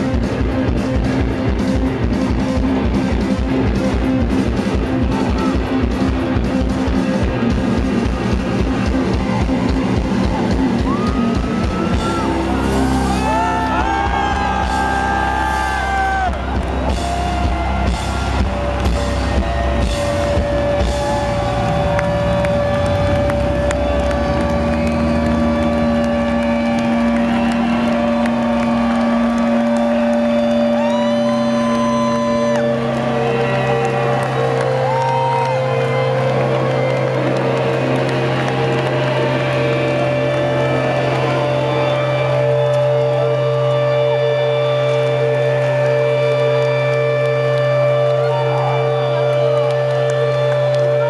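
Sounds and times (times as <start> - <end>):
crowd cheering and whistling: 0.0 - 51.0
droning amplified guitar notes: 0.0 - 51.0.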